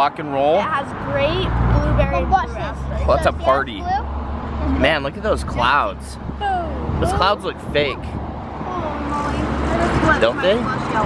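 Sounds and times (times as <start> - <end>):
passing cars: 0.0 - 11.0.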